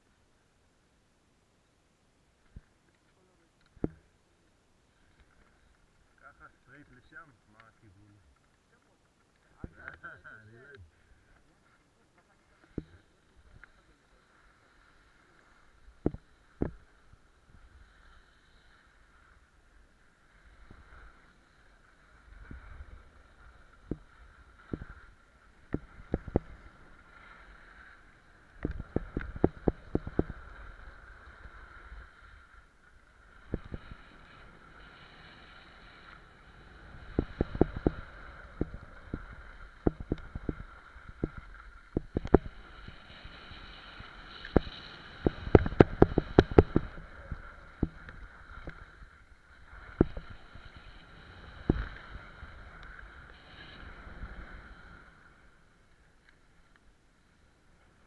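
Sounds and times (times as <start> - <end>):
skis scraping over packed snow: 2.4 - 58.0.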